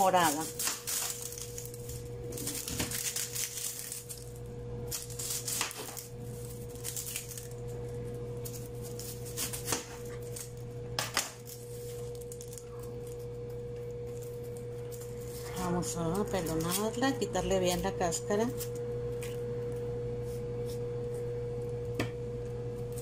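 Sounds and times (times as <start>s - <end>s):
low hum: 0.0s - 23.0s.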